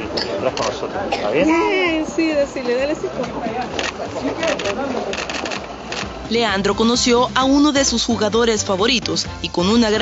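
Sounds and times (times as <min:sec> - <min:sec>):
camera shutters clicking: 0:03.8 - 0:06.2
people talking: 0:06.3 - 0:10.0.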